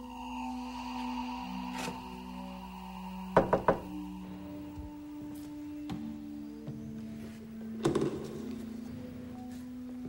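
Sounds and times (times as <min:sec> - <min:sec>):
sustained music drone: 0:00.0 - 0:10.0
knocks on a door: 0:03.4 - 0:03.9.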